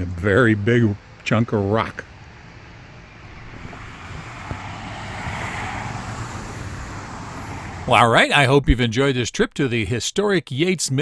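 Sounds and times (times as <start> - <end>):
distant road traffic hiss: 0.0 - 10.8.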